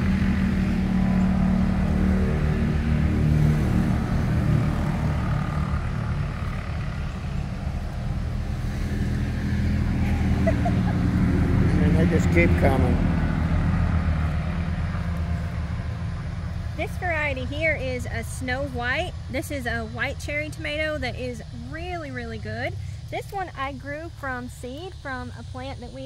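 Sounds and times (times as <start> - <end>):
off-road vehicles driving past: 0.0 - 26.0.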